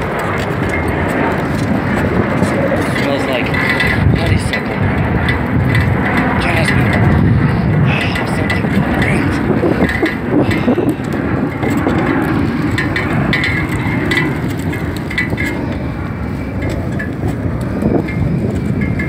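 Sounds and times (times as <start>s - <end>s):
bicycle tyres on wooden planks: 0.0s - 19.0s.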